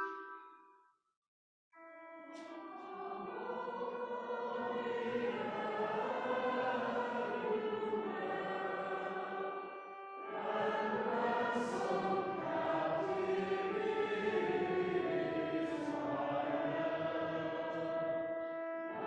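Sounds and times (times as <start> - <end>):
voices singing a hymn: 2.4 - 19.0
pipe organ: 3.3 - 19.0.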